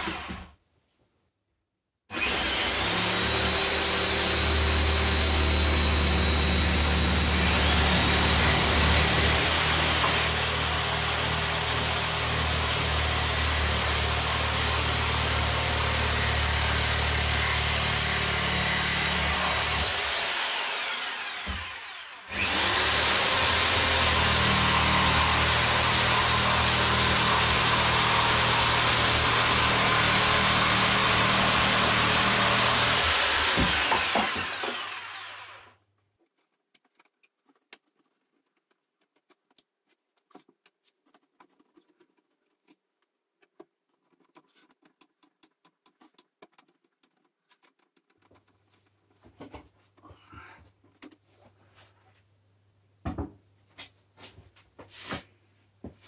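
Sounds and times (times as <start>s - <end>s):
power saw cutting wood: 0.0s - 0.5s, 2.1s - 35.8s.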